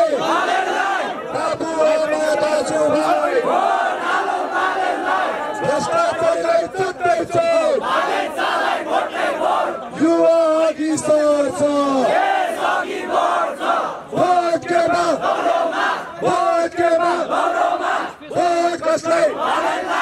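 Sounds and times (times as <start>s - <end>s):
man shouting into microphone: 0.0s - 0.3s, 1.2s - 3.4s, 5.6s - 7.8s, 9.9s - 12.1s, 14.1s - 15.2s, 16.2s - 17.3s, 18.3s - 19.4s
crowd chanting: 0.0s - 10.0s, 11.4s - 20.0s.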